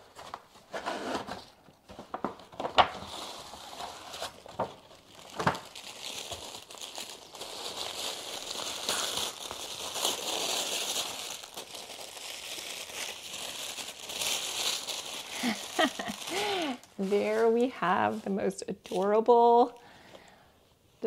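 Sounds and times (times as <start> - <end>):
sharp paper crackle: 1.9 - 17.6
tissue paper crinkling: 1.9 - 19.8.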